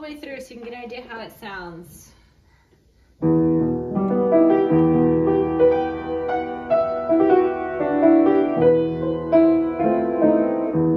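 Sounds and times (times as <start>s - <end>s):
upright piano playing chords: 3.2s - 10.9s.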